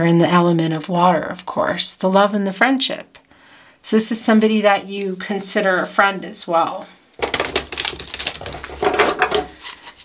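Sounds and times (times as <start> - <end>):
cards riffle-shuffled: 7.2 - 10.0.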